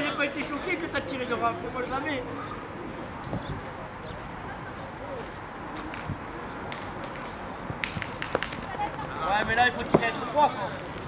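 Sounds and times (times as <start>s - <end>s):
distant voices murmuring: 0.0s - 11.0s.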